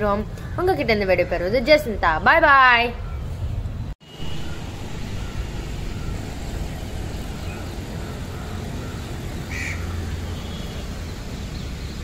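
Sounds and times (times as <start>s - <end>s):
low rumble: 3.7s - 10.0s.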